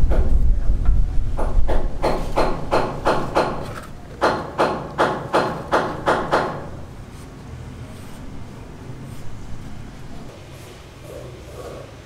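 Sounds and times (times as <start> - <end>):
low rumble: 0.0 - 2.0
hand hammer striking: 1.4 - 6.8.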